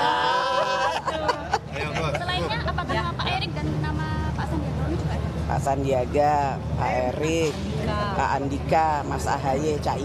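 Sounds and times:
low background hum: 0.0 - 10.0
people talking and laughing: 0.0 - 10.0.

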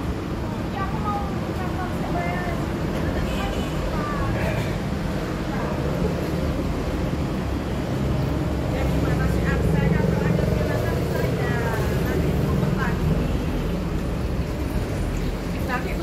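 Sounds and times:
faint voices talking: 0.0 - 16.0.

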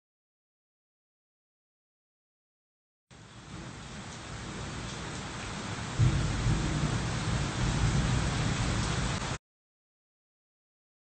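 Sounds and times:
steady rain: 3.1 - 9.4
thunder rumbling: 3.4 - 9.4.

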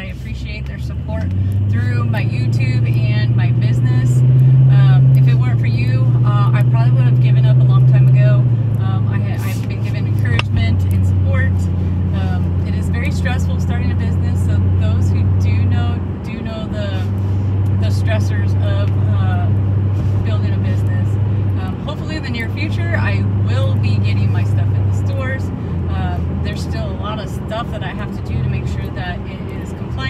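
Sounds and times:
woman talking: 0.0 - 17.1, 17.7 - 19.6, 20.2 - 30.0
car engine and road drone: 0.0 - 30.0.

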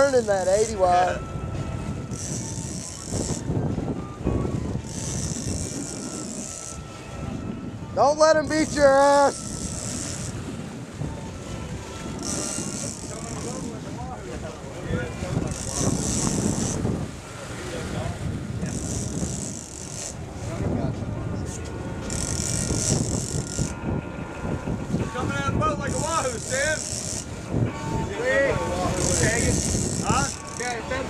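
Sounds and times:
fishing reel buzzing: 0.0 - 1.2, 1.9 - 3.5, 4.7 - 6.9, 8.6 - 10.5, 11.9 - 13.7, 15.4 - 16.9, 18.6 - 20.2, 22.0 - 23.8, 25.9 - 27.4, 28.8 - 31.0
boat engines running: 0.0 - 31.0.

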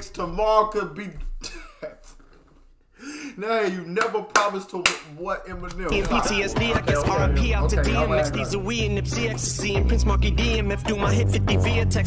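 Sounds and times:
man coughing: 1.4 - 2.2.

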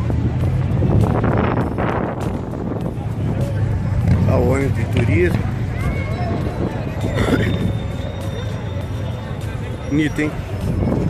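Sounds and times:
wind blowing on microphone: 0.0 - 7.9.

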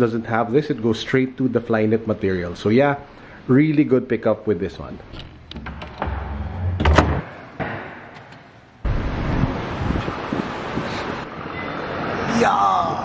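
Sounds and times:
door latch clicking: 5.1 - 7.4, 8.1 - 8.5.

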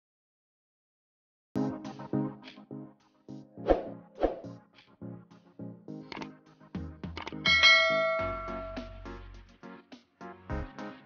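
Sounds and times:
background music: 1.6 - 11.0
bell-like ding: 7.5 - 9.0.

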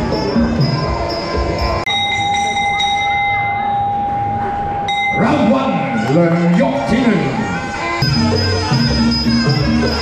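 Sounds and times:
wind-instrument ring music: 0.0 - 10.0
ring bell ringing tone: 0.2 - 6.6.

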